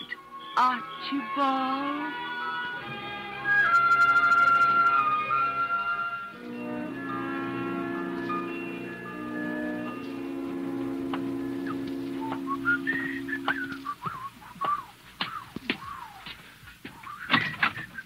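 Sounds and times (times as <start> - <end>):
orchestral chords: 0.0 - 13.9
person whistling a tune: 3.4 - 5.9, 11.6 - 14.9, 17.1 - 18.0.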